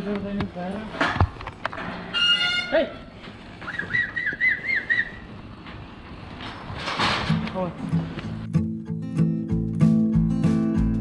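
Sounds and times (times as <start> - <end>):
person whistling a warbling call: 3.6 - 5.3.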